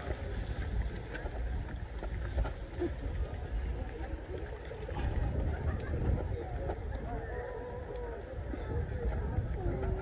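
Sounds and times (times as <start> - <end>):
footsteps on wooden boardwalk: 0.0 - 7.2
wind buffeting microphone: 0.0 - 10.0.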